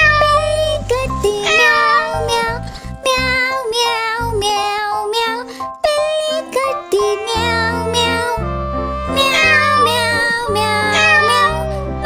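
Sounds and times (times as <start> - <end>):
children's song: 0.0 - 12.0
sung meowing cat calls: 1.3 - 2.6, 9.0 - 11.7
synth bass line: 6.9 - 12.0.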